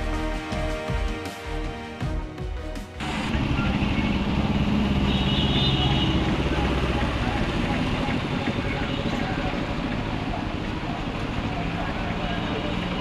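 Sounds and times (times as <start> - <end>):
motorcycle engines running: 3.0 - 13.0.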